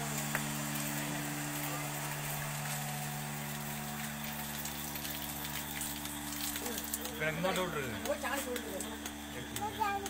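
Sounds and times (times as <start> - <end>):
vacuum pump humming with hiss: 0.0 - 10.0.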